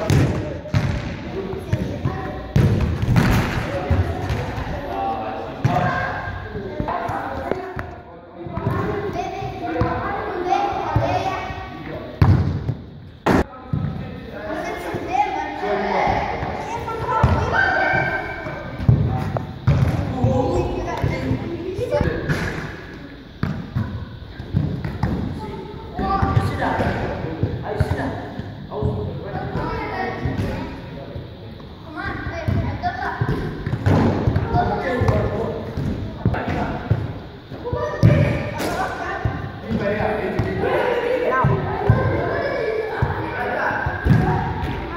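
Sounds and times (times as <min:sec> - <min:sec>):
football being kicked: 0:00.0 - 0:01.2
people's voices in background: 0:00.0 - 0:12.4, 0:13.0 - 0:44.9
children calling out: 0:40.6 - 0:44.9.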